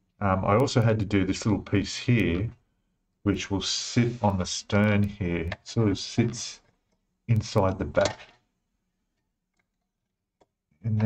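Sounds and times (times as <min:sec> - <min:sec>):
person speaking: 0:00.2 - 0:02.6, 0:03.2 - 0:06.7, 0:07.3 - 0:08.3, 0:10.8 - 0:11.0.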